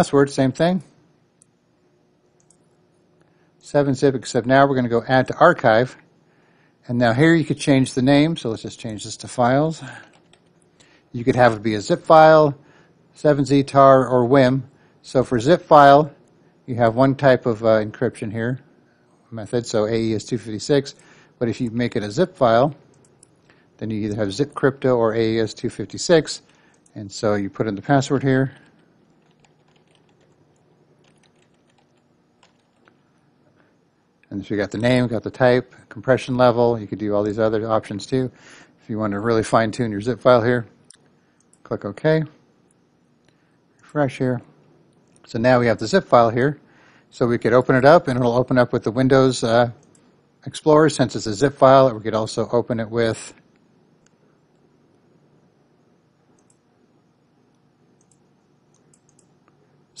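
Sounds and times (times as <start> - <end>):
computer keyboard keystrokes: 10.1 - 10.5, 28.7 - 30.4, 31.0 - 33.0, 58.0 - 59.3.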